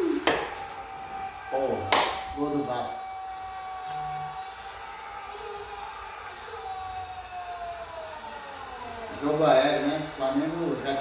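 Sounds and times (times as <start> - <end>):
siren: 0.0 - 11.0.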